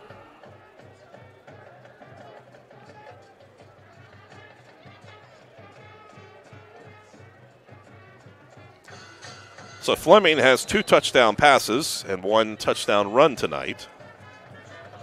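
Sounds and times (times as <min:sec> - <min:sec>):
faint marching band: 0:00.0 - 0:15.0.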